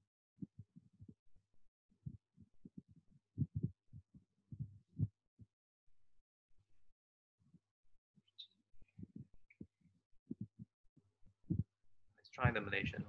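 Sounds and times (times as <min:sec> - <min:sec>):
fingers tapping laptop: 0:09.0 - 0:10.7.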